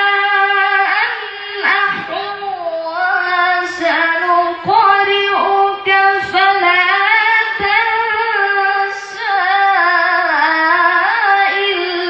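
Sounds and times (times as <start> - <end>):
boy reciting melodically: 0.0 - 12.0.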